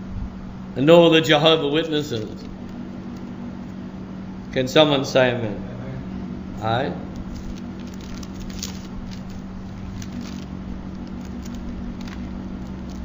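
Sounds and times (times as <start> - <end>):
steady low hum: 0.0 - 13.0
faint crackles and clicks: 2.1 - 3.8, 7.1 - 13.0.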